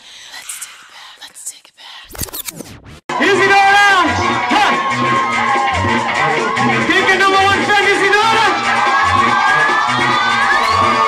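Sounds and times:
sweeping scratch effects: 2.1s - 3.0s.

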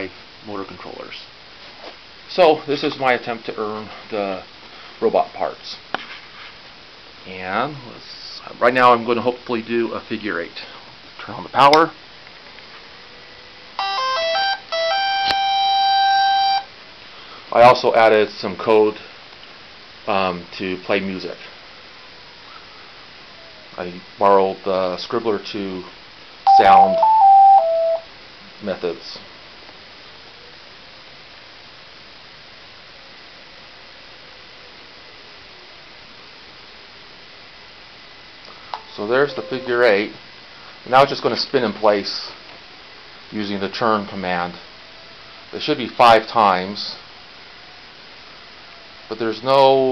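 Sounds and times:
steady low hiss: 0.0s - 49.9s
electronic robot beeping tune: 13.8s - 16.6s, 26.5s - 28.0s, 38.8s - 40.0s.

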